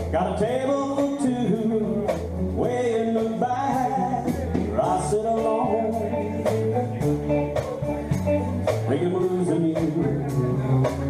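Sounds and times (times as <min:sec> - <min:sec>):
live country band playing: 0:00.0 - 0:11.0.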